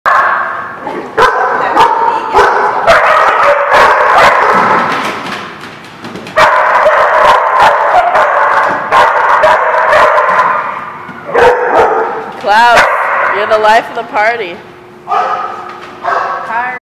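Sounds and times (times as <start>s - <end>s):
dogs barking and yipping: 0.1s - 5.0s, 6.3s - 13.6s, 15.1s - 16.5s.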